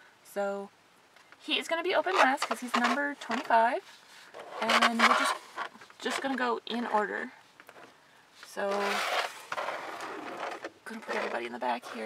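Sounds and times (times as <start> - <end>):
cardboard boxes scraping on table: 2.0 - 6.4, 8.6 - 12.0.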